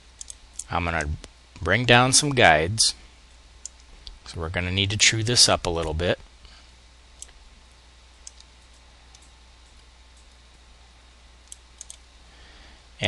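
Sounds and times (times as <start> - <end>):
low steady hum: 0.0 - 13.0
computer mouse clicks: 0.2 - 0.7, 8.2 - 8.5, 11.4 - 12.0.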